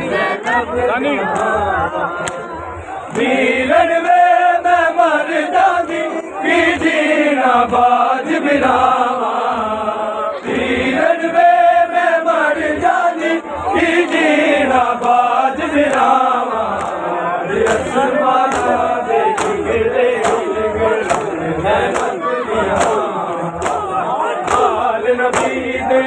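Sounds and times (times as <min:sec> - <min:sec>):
crowd of men chanting: 0:00.0 - 0:26.0
hands beating chests: 0:17.6 - 0:26.0.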